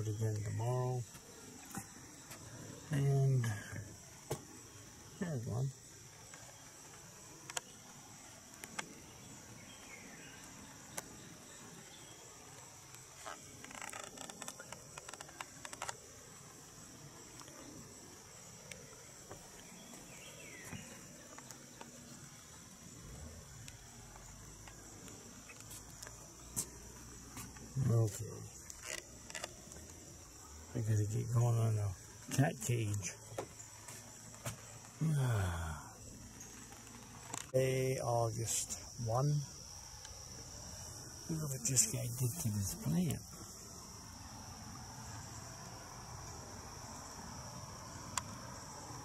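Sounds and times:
high-pitched insect chorus: 0:00.0 - 0:49.0
rustling: 0:12.5 - 0:17.7, 0:36.0 - 0:37.6.

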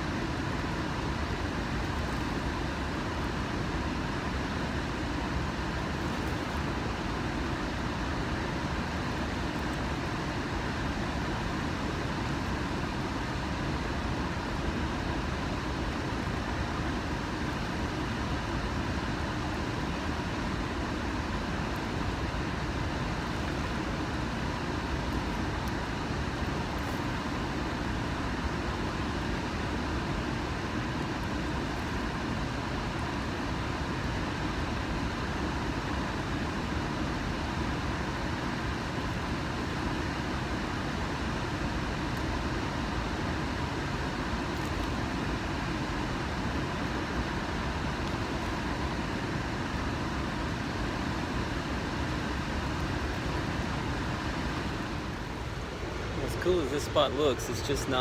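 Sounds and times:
river current roaring: 0:00.0 - 0:58.0.

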